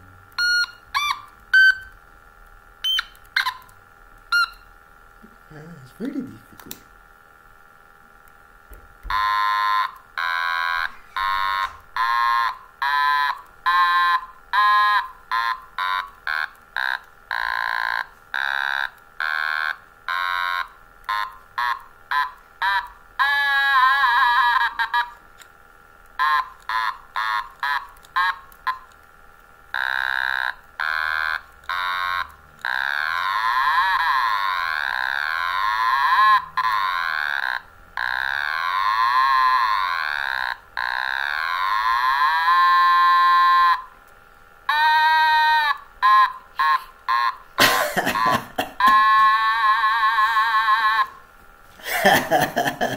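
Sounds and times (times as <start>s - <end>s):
electronic toy instrument notes: 0.0s - 2.0s, 2.8s - 4.7s, 9.0s - 25.5s, 26.1s - 29.0s, 29.7s - 44.0s, 44.7s - 51.2s.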